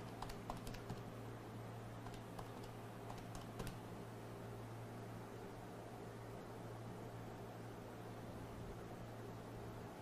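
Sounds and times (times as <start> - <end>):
typing on computer keyboard: 0.0 - 1.1, 2.0 - 3.8
low electrical hum: 0.0 - 10.0.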